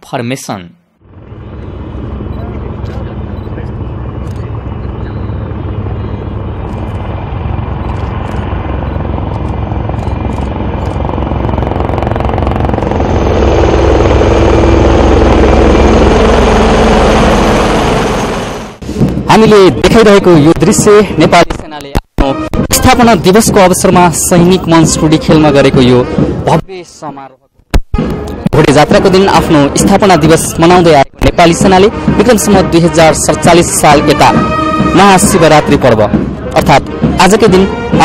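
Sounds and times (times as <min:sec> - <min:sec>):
helicopter rotors beating: 0:01.0 - 0:27.2, 0:27.9 - 0:38.0.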